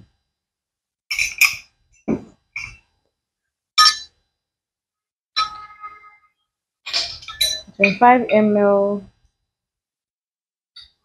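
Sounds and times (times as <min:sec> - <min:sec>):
glass bottles clinking on counter: 0:01.1 - 0:02.8, 0:03.8 - 0:04.1, 0:06.9 - 0:08.1.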